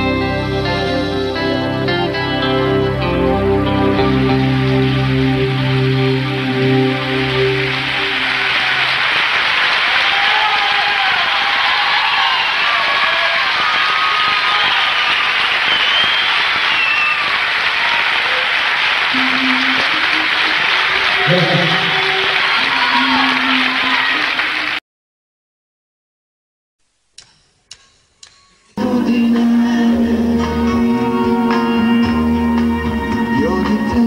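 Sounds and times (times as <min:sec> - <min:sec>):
audience applauding and cheering: 0:03.9 - 0:24.8.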